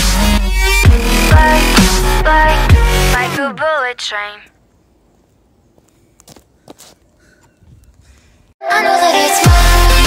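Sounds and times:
footsteps on stone paving: 0:05.1 - 0:08.3.

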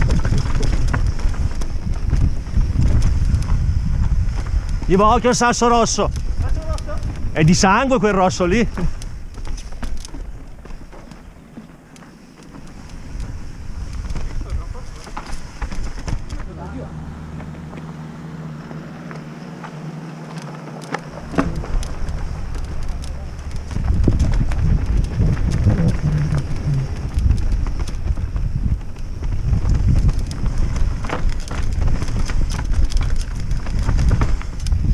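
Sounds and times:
wind on microphone: 0:00.0 - 0:11.8, 0:12.4 - 0:18.9, 0:21.0 - 0:34.9
bike rattling and knocking: 0:00.0 - 0:34.9
steady low hum: 0:00.0 - 0:34.9
tyres on dirt and stones: 0:00.0 - 0:34.9.

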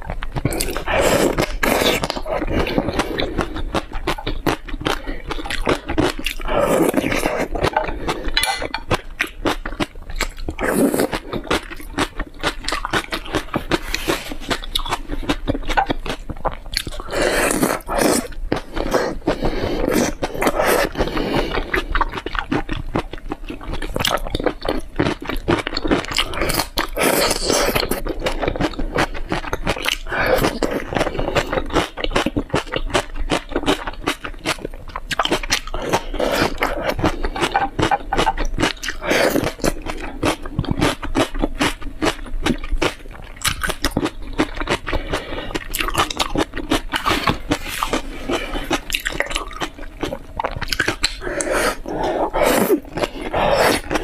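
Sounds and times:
chewing and crunching: 0:00.0 - 0:54.0.

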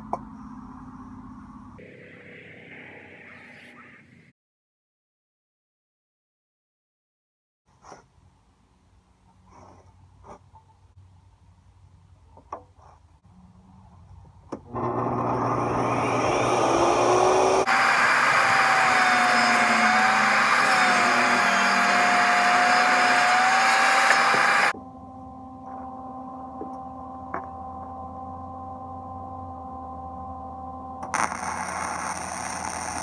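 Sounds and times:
table saw ripping wood: 0:14.7 - 0:24.7, 0:31.1 - 0:33.0.

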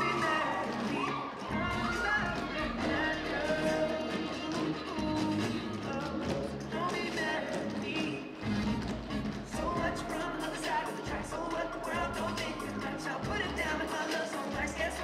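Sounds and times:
song with singing: 0:00.0 - 0:15.0.

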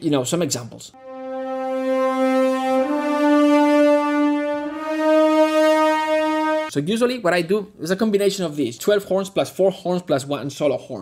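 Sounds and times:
french horns holding long notes: 0:01.0 - 0:06.7.

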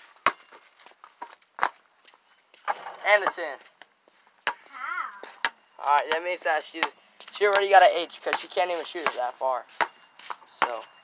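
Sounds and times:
basketball bouncing on concrete: 0:00.0 - 0:01.8, 0:02.6 - 0:03.6, 0:04.4 - 0:10.9.

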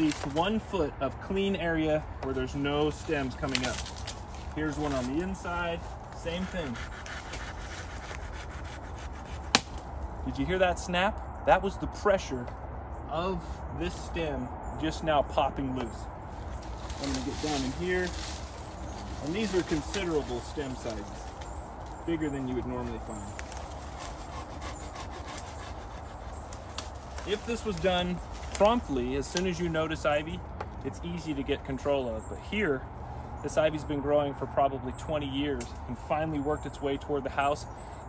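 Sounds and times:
ivy stems pulled from bark: 0:00.0 - 0:00.5, 0:02.8 - 0:09.9, 0:16.4 - 0:29.6
ivy stem snapping: 0:09.4 - 0:09.8.

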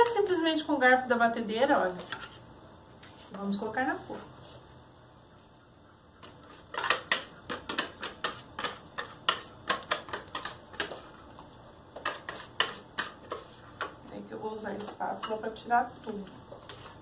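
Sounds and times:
whisk clicking against bowl: 0:06.7 - 0:11.0.

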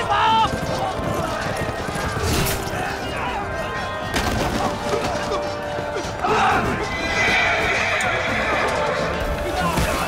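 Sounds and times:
orchestral music: 0:00.0 - 0:10.0
soldiers yelling: 0:02.8 - 0:10.0
horse whinnying: 0:04.8 - 0:09.2.

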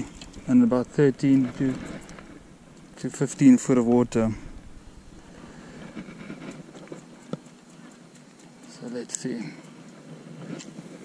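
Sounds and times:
wind buffeting microphone: 0:00.0 - 0:07.0
faint clicks: 0:05.1 - 0:11.0.

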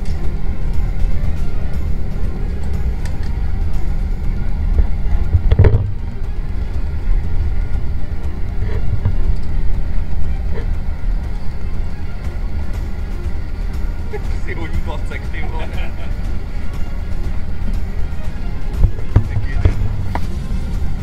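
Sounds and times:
background music: 0:00.0 - 0:21.0
train rumble inside carriage: 0:00.0 - 0:21.0.

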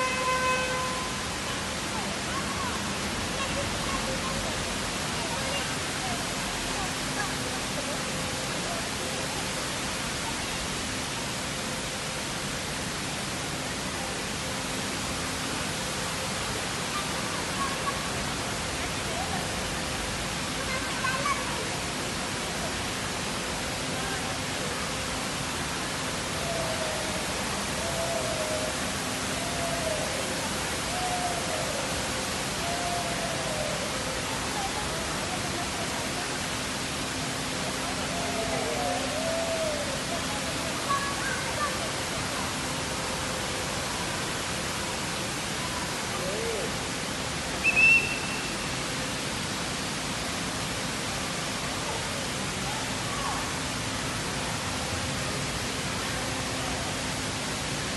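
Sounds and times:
fountain water splashing: 0:00.0 - 0:57.9.

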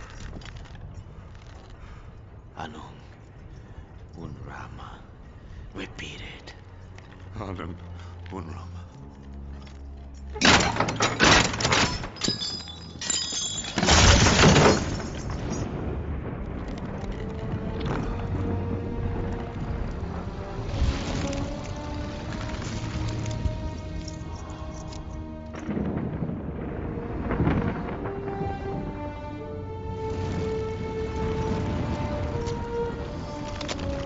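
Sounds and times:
debris clattering on stone floor: 0:09.6 - 0:15.8
deep thunder-like rumble: 0:15.2 - 0:34.0
orchestral score held notes: 0:17.2 - 0:34.0.

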